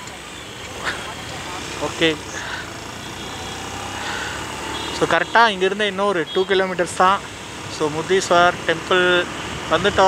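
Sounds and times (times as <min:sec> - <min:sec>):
motorcycle engine hum: 0:00.0 - 0:10.0
wind and road noise: 0:00.0 - 0:10.0.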